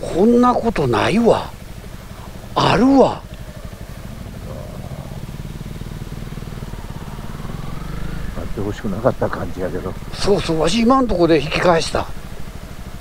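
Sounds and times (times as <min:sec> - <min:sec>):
dirt bikes engines rumbling: 0:00.0 - 0:13.0.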